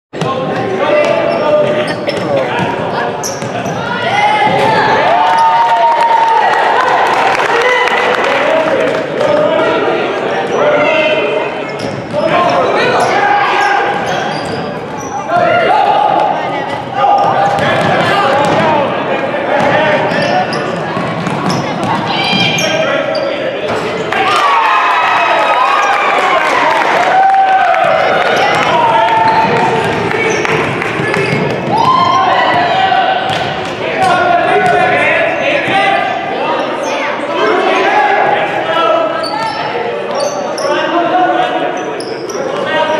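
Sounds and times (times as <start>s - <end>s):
basketballs bouncing on hardwood: 17.3s - 18.7s, 28.5s - 34.9s
people shouting: 24.2s - 36.0s.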